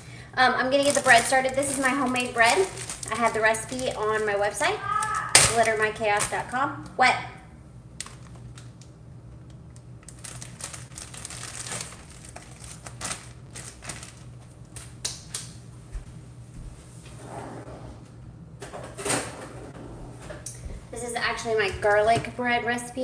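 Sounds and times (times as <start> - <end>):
steady low hum: 0.0 - 23.0
plastic bag crinkling: 0.7 - 6.6, 8.0 - 8.8, 10.0 - 14.4.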